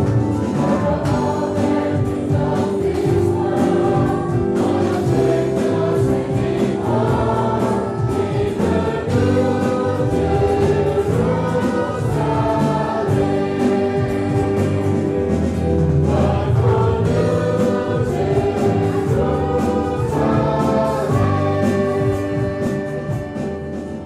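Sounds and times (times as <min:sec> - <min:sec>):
choir singing a hymn: 0:00.0 - 0:24.0
instrumental accompaniment: 0:00.0 - 0:24.0.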